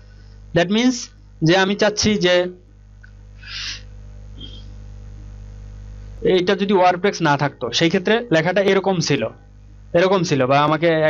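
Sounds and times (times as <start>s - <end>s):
breath hiss into microphone: 0.0s - 0.6s, 3.3s - 4.9s.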